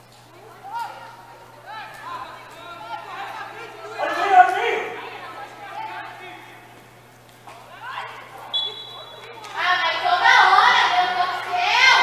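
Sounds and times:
steady low hum: 0.0s - 12.0s
voices shouting and chattering: 0.0s - 12.0s.

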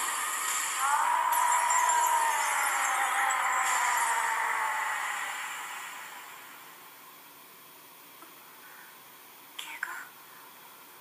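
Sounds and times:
faint steady hiss: 5.4s - 11.0s
whispered voice: 9.6s - 10.3s.

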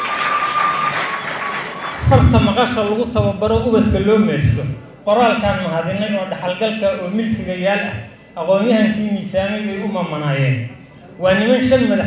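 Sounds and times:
audience clapping: 0.0s - 2.3s.

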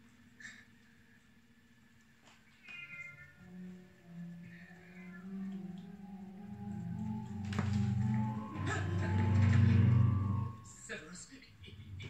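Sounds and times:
cat meowing: 2.6s - 3.6s, 4.4s - 9.7s
film music: 3.3s - 10.9s.

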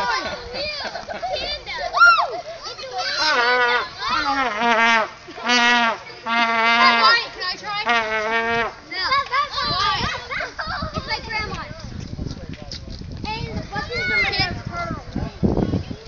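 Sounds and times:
children shouting: 0.0s - 4.7s, 5.4s - 11.5s, 13.7s - 15.0s.

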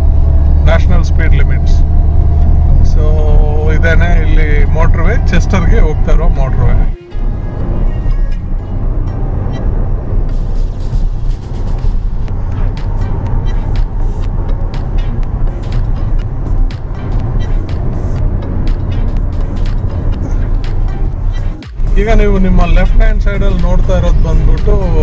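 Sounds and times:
car driving rumble inside cabin: 0.0s - 25.0s
music with steady beat: 6.9s - 25.0s.

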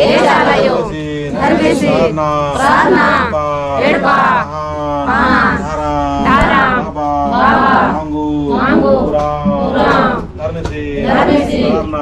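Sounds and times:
group chanting a prayer: 0.0s - 12.0s.

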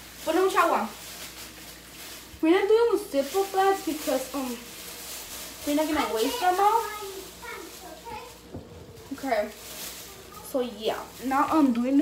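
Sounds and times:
faint child talking: 6.0s - 8.4s, 10.0s - 10.8s.

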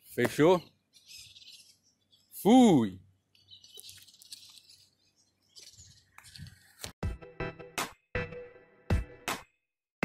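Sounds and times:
faint bird chirps: 0.4s - 6.6s.

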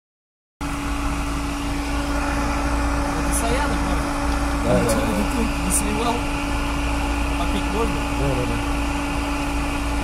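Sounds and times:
car engine humming: 0.6s - 10.0s.

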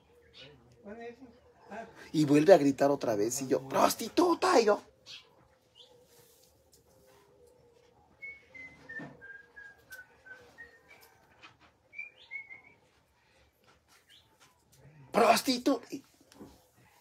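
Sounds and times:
faint bird song: 0.0s - 17.0s.

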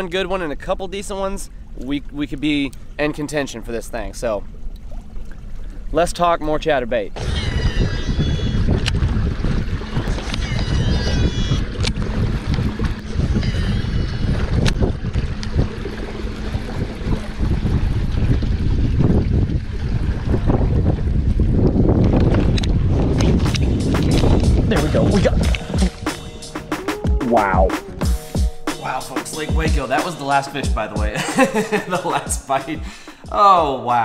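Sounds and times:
water splashing: 1.9s - 32.6s
wind buffeting microphone: 7.2s - 26.4s.

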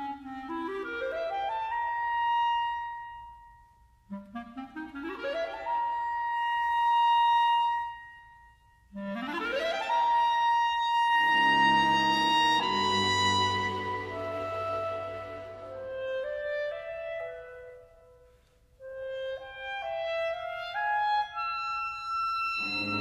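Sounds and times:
clarinet playing: 4.1s - 23.0s.

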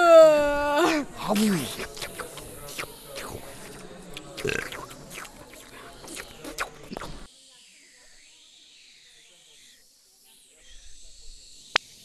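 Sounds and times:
snake hissing: 0.8s - 10.0s.

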